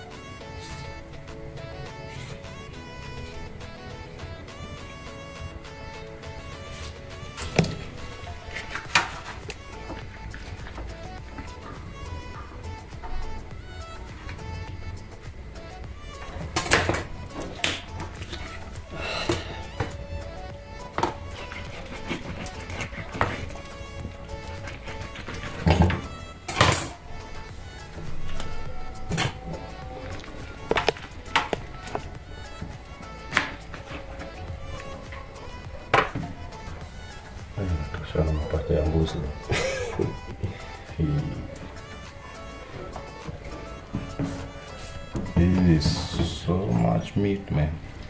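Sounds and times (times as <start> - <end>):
background music: 0.0 - 48.0.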